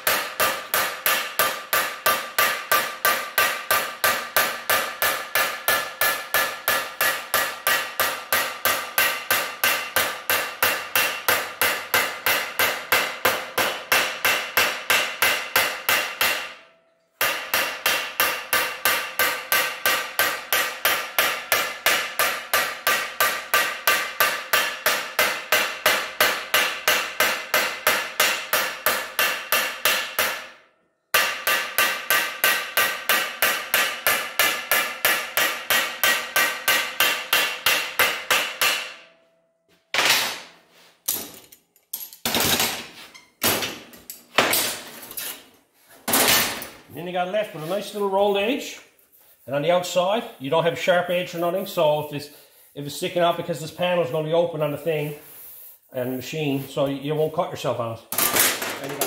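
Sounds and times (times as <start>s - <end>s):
hammer beating sheet steel: 0.0s - 41.5s, 42.2s - 57.5s, 58.1s - 59.0s.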